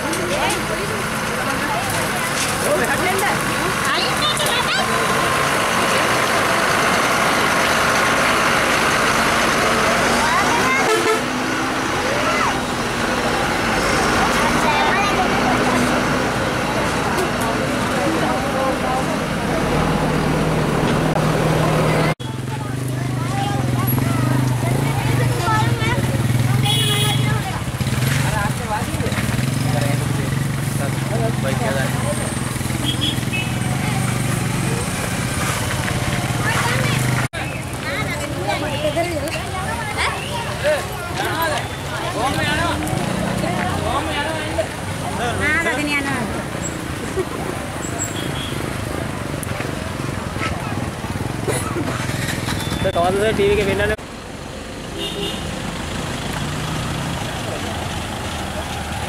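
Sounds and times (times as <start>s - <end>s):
diesel truck engine running: 0.0s - 47.9s, 48.8s - 59.0s.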